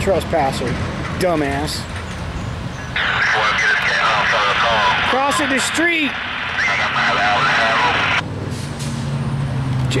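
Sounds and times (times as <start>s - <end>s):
diesel engine idling: 2.9s - 8.2s.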